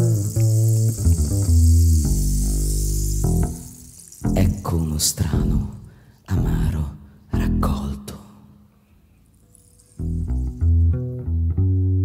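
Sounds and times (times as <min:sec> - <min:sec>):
acoustic guitar: 0:00.0 - 0:06.1
double bass: 0:00.0 - 0:08.1, 0:09.3 - 0:12.0.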